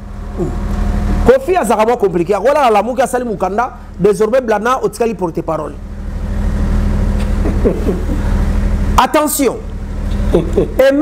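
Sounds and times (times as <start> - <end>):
constant hum: 0.0 - 11.0.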